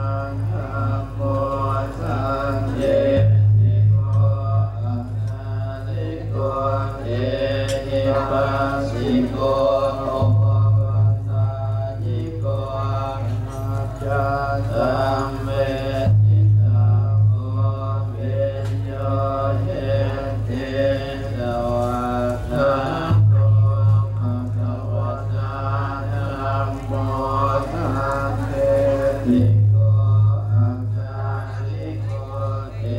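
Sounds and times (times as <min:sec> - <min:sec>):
chanting: 0:00.0 - 0:32.9
low drone: 0:00.0 - 0:32.9.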